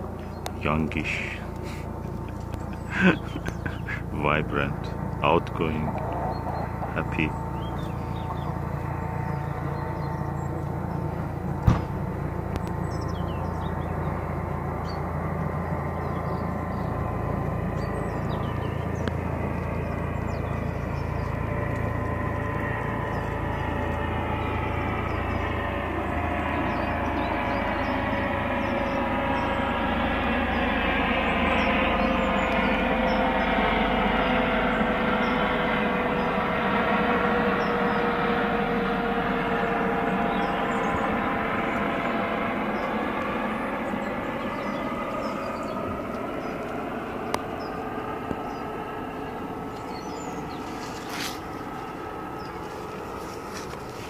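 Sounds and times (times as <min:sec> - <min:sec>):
passing vehicle rumble: 0:00.0 - 0:28.7.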